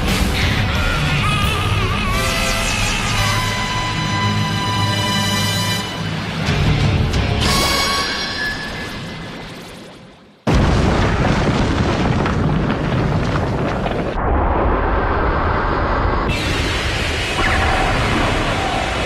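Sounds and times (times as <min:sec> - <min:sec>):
dense explosion rumble: 0:10.5 - 0:19.0
loud explosion blast: 0:10.5 - 0:19.0.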